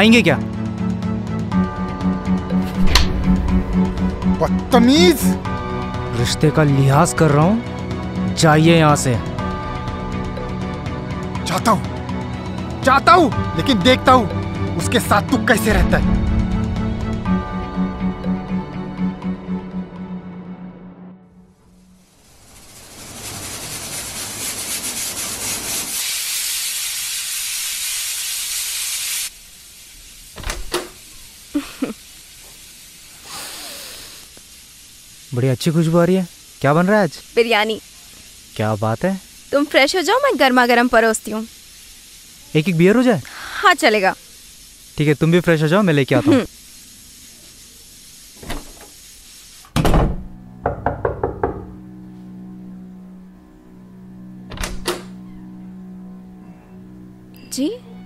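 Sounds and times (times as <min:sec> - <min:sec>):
background music drone: 0:00.0 - 0:22.6, 0:51.7 - 0:58.0
food hissing on a stove: 0:21.7 - 0:49.8
knocking on wooden door: 0:49.8 - 0:51.8.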